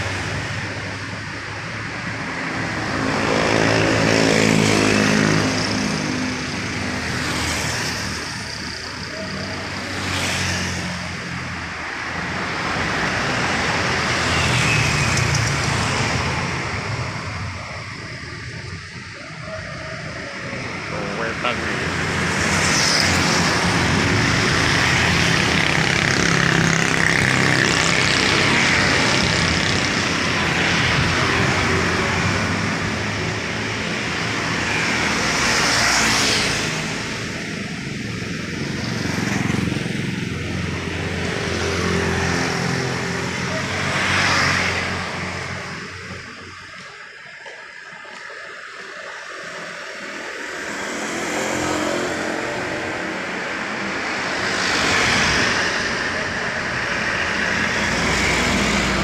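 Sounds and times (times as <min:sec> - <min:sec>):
motorcycles passing: 0:00.0 - 0:59.0.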